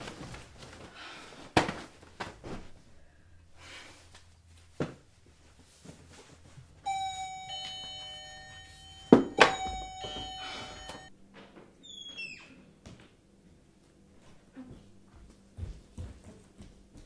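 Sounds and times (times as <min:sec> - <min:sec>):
doorbell chime ringing: 0:06.8 - 0:11.1.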